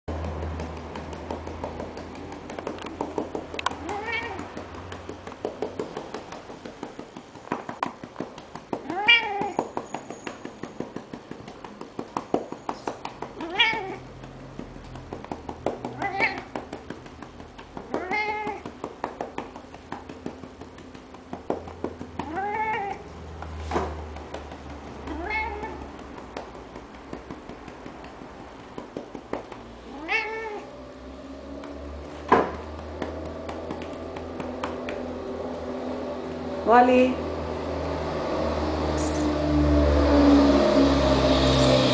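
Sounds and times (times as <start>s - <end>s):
cat meowing: 3.7s - 4.6s, 8.8s - 9.8s, 13.4s - 14.1s, 16.0s - 16.6s, 17.9s - 18.8s, 22.2s - 23.1s, 25.0s - 25.9s, 29.9s - 30.7s.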